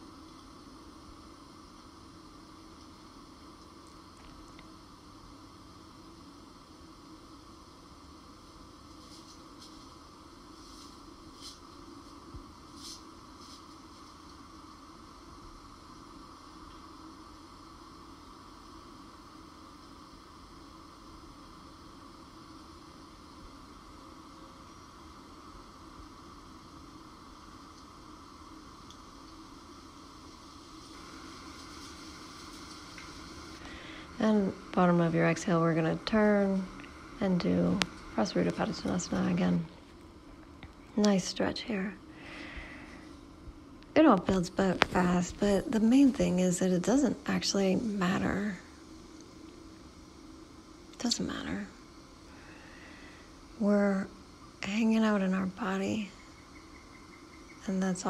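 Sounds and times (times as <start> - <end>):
faint background hiss: 0.0 - 58.0.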